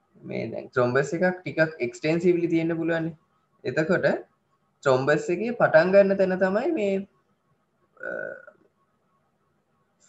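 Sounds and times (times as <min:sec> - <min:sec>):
person burp-like throat sound: 0:08.0 - 0:08.6.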